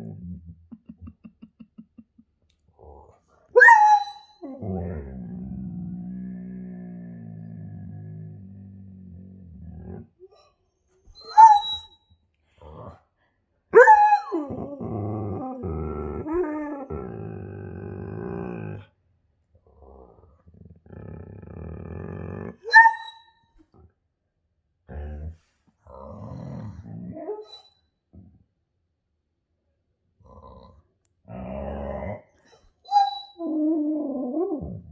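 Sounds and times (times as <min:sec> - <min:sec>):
husky whining: 0:03.5 - 0:05.0, 0:10.2 - 0:12.0
dog grumbling call: 0:14.4 - 0:18.9.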